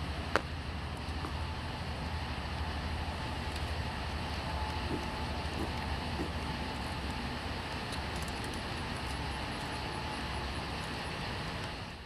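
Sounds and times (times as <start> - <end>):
outdoor background rumble and hiss: 0.0 - 12.0.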